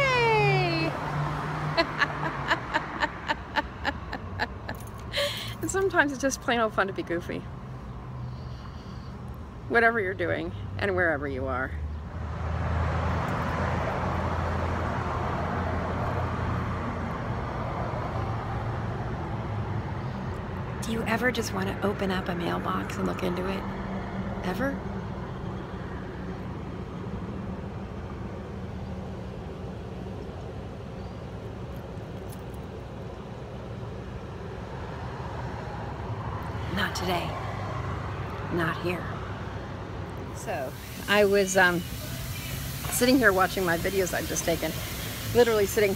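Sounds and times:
woman speaking: 0.0s - 1.1s, 1.8s - 4.6s, 5.2s - 7.5s, 24.4s - 24.8s, 36.7s - 37.4s, 38.5s - 39.2s, 40.4s - 41.8s, 42.9s - 44.8s, 45.4s - 45.9s
low engine rumble: 0.0s - 11.5s
road traffic rumble: 0.0s - 45.9s.

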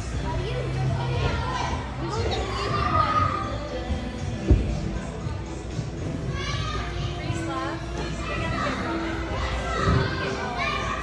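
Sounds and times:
background music: 0.0s - 11.0s
children calling and chattering: 6.2s - 11.0s.

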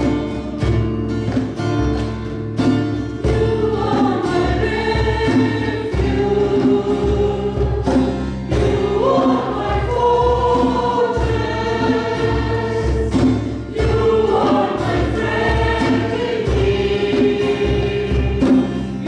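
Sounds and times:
choir singing worship song: 0.0s - 1.6s, 2.6s - 19.0s
rhythmic accompaniment: 0.0s - 19.0s.

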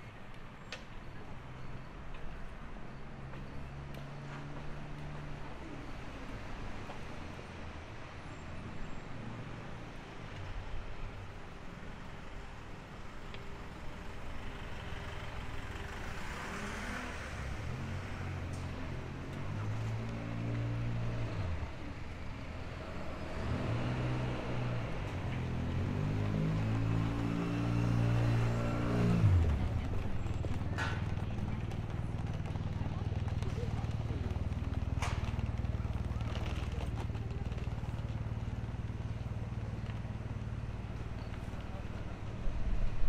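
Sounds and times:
low traffic hum: 0.0s - 43.0s
vehicle engine: 0.0s - 43.0s.

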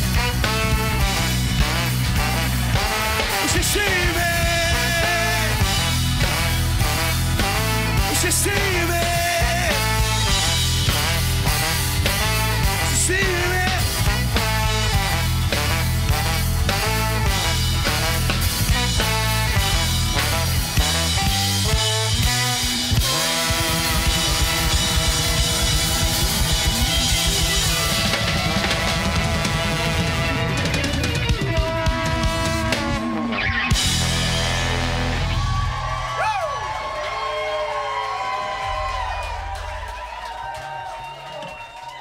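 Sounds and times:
live band playing: 0.0s - 42.0s.

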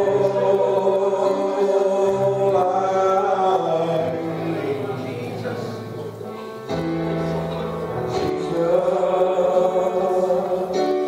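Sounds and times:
voices singing worship music: 0.0s - 11.0s.

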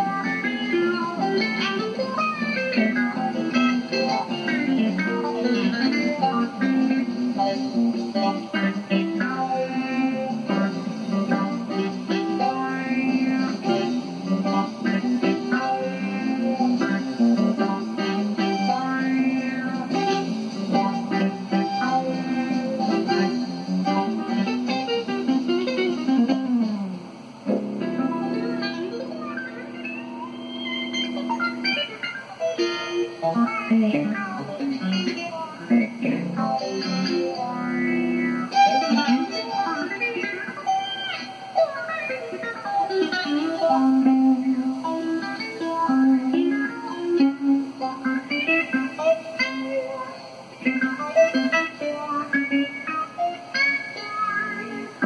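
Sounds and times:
country band playing: 0.0s - 55.0s.

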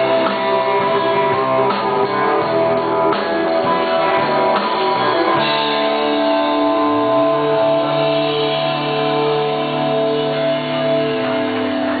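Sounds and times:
rock band guitars sustained chord: 0.0s - 12.0s.

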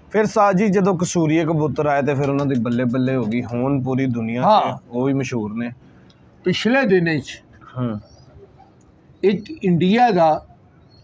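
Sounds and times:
pigeons cooing: 8.0s - 9.7s.

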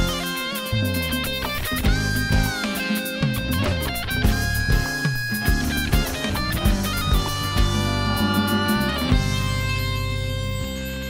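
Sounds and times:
drums: 0.0s - 10.4s
electric bass: 0.0s - 11.0s
nylon-string guitar melody: 0.0s - 11.0s.

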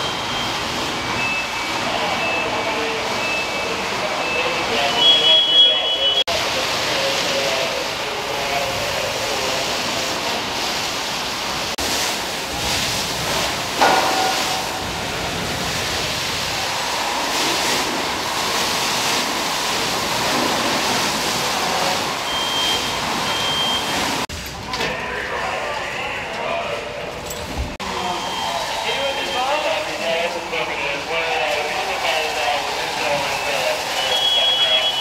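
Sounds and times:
fire hose spraying water: 0.0s - 24.6s, 27.8s - 35.0s
sharp knock: 13.8s - 15.1s.

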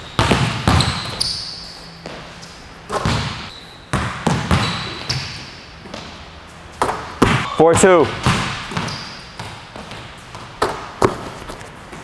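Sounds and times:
basketball bouncing on gym floor: 0.0s - 1.4s, 2.9s - 6.2s, 6.8s - 11.3s.

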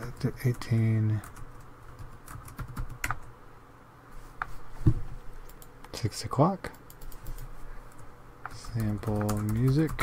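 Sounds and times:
computer keys and mouse clicking: 1.2s - 3.3s, 5.4s - 6.0s, 6.7s - 10.0s
heavy thump: 4.8s - 5.1s.

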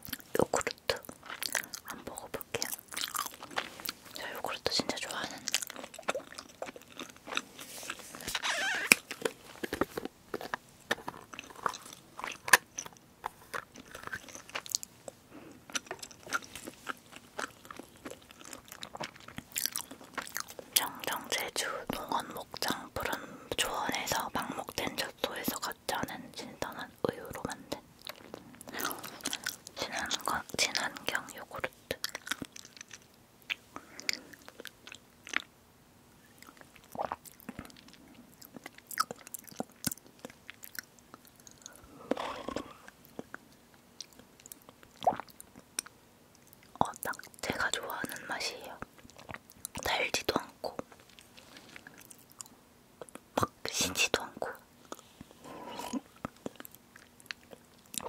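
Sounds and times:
wet chewing: 0.0s - 23.2s, 27.3s - 35.5s, 36.2s - 53.5s, 54.4s - 58.0s.

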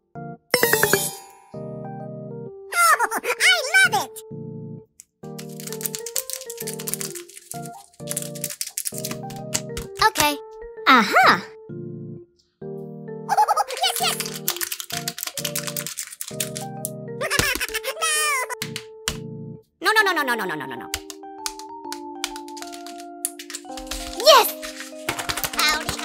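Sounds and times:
background music with held notes: 0.0s - 26.0s
paper rustling and crackling: 5.4s - 10.0s, 13.5s - 17.9s, 22.2s - 26.0s.

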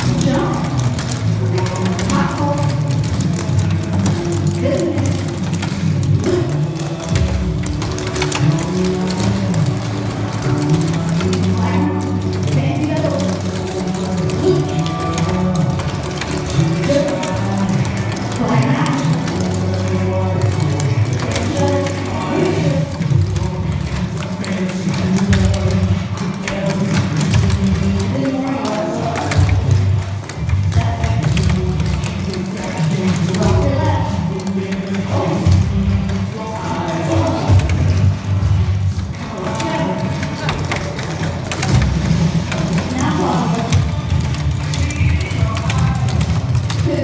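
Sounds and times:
clogging shoes tapping on stage: 0.0s - 47.0s
recorded music playing: 0.0s - 47.0s.

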